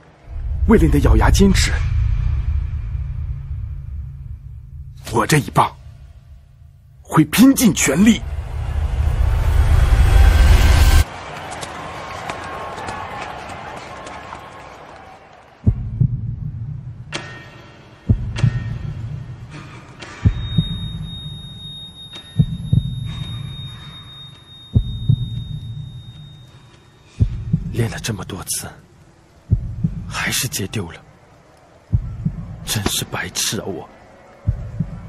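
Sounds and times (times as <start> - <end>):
low rumbling swell: 0.2 - 7.1, 8.0 - 11.0
heavy heartbeat-like thuds: 15.7 - 17.0, 18.1 - 19.0, 20.2 - 21.0, 22.4 - 23.2, 24.8 - 25.7, 27.2 - 27.8, 29.5 - 30.1, 31.9 - 32.7, 34.5 - 35.0
thin high ringing tone: 20.3 - 27.2.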